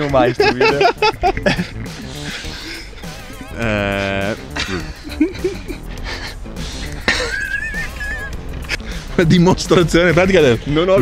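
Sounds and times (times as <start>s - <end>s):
men laughing: 0.0s - 10.8s
high wheezing laugh: 0.7s - 3.5s, 4.5s - 9.1s.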